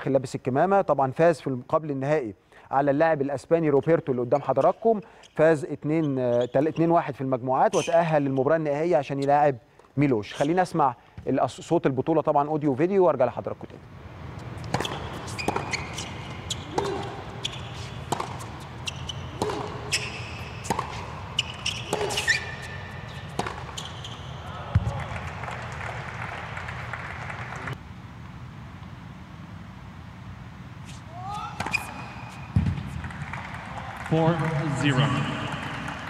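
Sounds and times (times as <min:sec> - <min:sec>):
tennis ball taps on hard court: 0:18.1 - 0:18.6, 0:19.4 - 0:19.8, 0:20.6 - 0:21.0.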